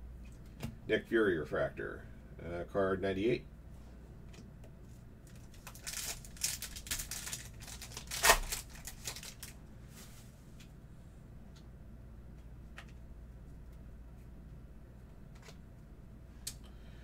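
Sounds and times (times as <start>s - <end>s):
foil pack crinkling: 5.3s - 9.6s
foil pack ripping open: 5.4s - 9.6s.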